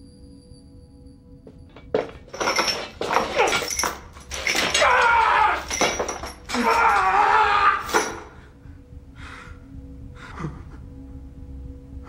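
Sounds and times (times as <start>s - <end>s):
metallic clinks: 1.7s - 7.1s, 7.8s - 8.4s
man crying out in pain: 4.6s - 8.5s.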